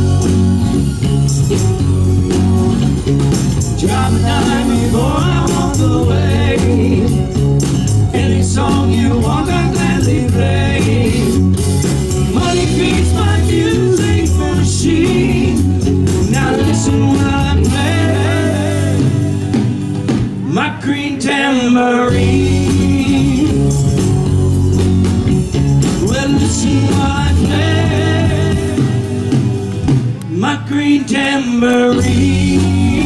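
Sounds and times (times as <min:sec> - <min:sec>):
drum kit: 0:00.0 - 0:20.7, 0:22.1 - 0:30.5, 0:31.7 - 0:33.0
bass guitar: 0:00.0 - 0:33.0
electric guitar: 0:00.0 - 0:33.0
person singing: 0:03.8 - 0:11.5, 0:12.3 - 0:19.5, 0:20.4 - 0:23.9, 0:25.8 - 0:29.6, 0:30.2 - 0:33.0.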